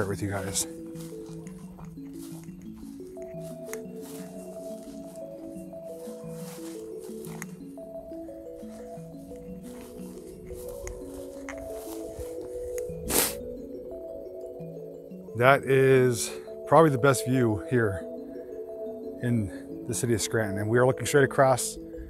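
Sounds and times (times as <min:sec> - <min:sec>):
slow instrumental music: 0:00.0 - 0:22.0.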